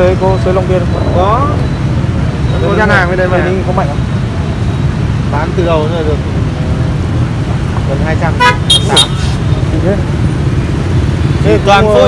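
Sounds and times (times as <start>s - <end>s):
low rumble of street noise: 0.0s - 12.0s.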